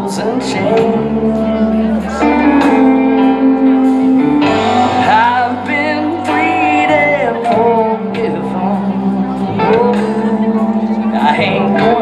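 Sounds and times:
live band sustained chords: 0:00.0 - 0:12.0
man singing: 0:00.0 - 0:12.0
wavering lead melody: 0:00.0 - 0:12.0.

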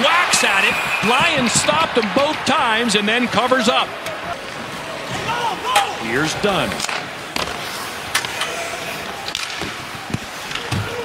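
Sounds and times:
arena crowd murmur: 0:00.0 - 0:11.0
hockey sticks and puck hits: 0:00.0 - 0:11.0.

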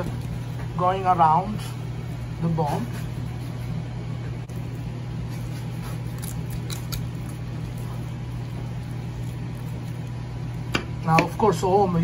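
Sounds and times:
low mechanical hum: 0:00.0 - 0:12.0
knife scraping on cutting board: 0:05.2 - 0:08.1.

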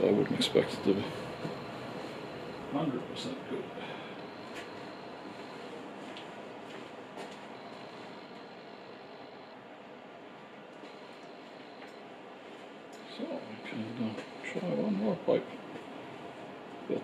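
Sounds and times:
low background noise: 0:00.0 - 0:17.0
faint clicks and knocks: 0:01.3 - 0:02.3.

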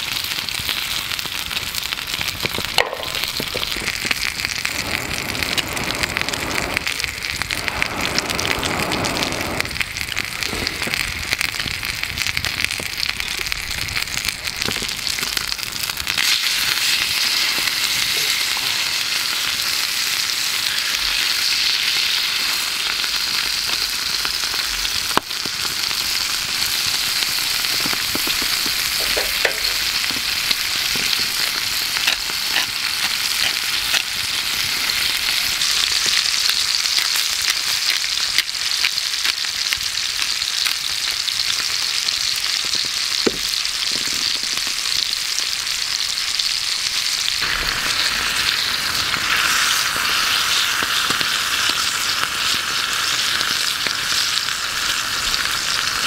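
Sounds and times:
steak sizzling in a skillet: 0:00.0 - 0:56.0
sharp pops: 0:02.4 - 0:09.8.

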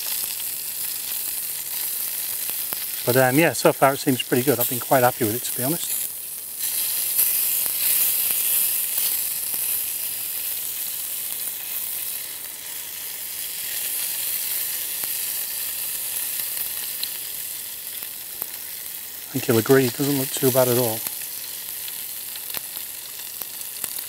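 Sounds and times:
drippings sizzling on charcoal: 0:00.0 - 0:24.0.

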